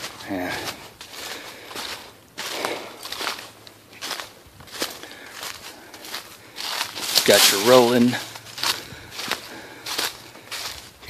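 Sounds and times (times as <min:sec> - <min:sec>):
footsteps crunching dry leaves: 0:00.0 - 0:11.0.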